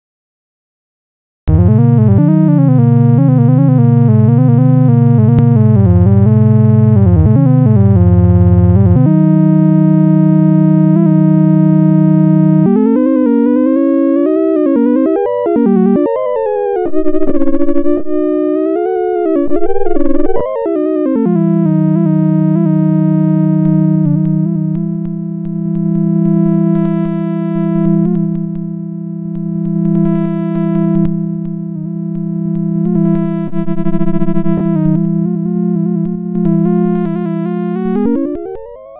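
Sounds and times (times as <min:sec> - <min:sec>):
electronic oscillator tone: 0:01.5 - 0:38.9.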